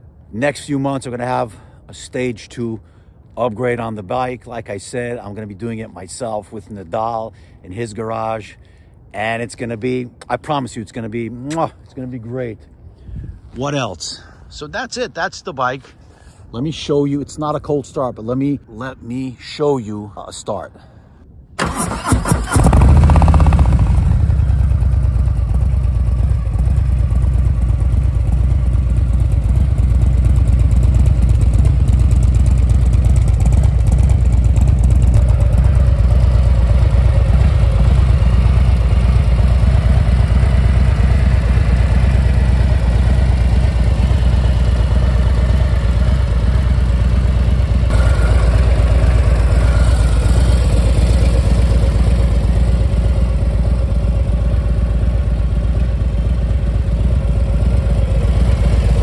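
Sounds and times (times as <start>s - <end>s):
motorcycle engine idling: 21.6s - 59.0s.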